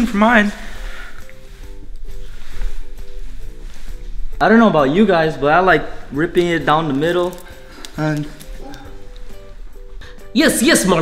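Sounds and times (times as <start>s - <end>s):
bouncy background music: 0.0s - 11.0s.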